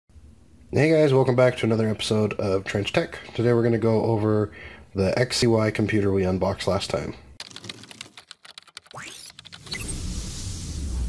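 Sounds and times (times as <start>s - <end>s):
sharp clicks: 7.4s - 9.9s
whoosh: 9.6s - 11.0s
rising sweep: 9.7s - 11.0s.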